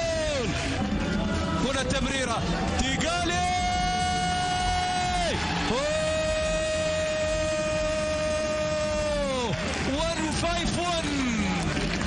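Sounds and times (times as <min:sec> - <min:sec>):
commentator shouting goal: 0:01.6 - 0:11.6.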